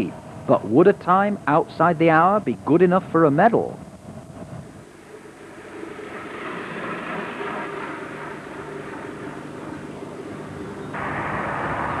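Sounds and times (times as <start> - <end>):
faint low hum: 0.0 - 12.0
road traffic rushing: 4.9 - 12.0.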